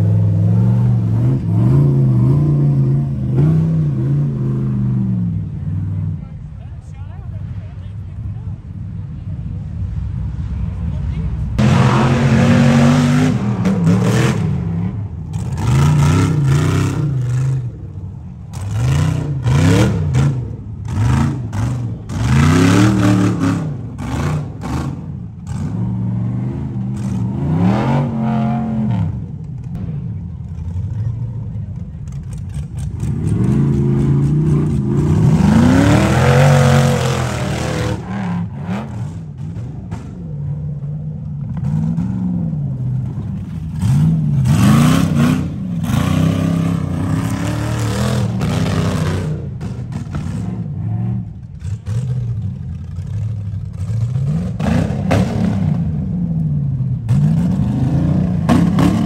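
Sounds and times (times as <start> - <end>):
buggy engine revving hard: 0.0 - 6.0, 11.6 - 17.8, 18.5 - 29.4, 32.5 - 59.0.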